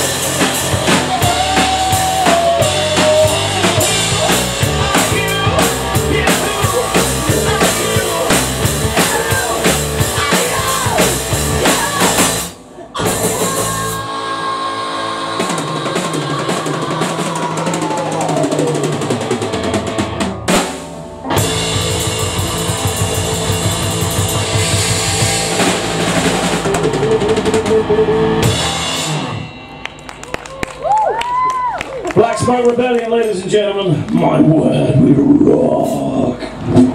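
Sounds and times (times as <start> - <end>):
drums and cymbals: 0.0 - 14.2, 15.2 - 29.9
bass guitar: 0.0 - 32.2, 33.5 - 36.9
electric guitar: 0.0 - 32.2.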